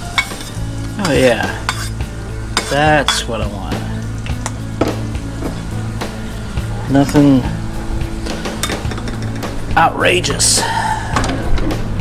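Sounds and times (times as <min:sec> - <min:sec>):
chilies sizzling in hot oil: 0:00.0 - 0:10.6
background music: 0:00.0 - 0:12.0.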